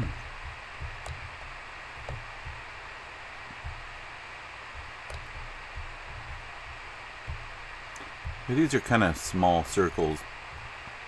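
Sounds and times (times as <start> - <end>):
low room rumble: 0.0 - 11.0
microphone hiss: 0.0 - 11.0.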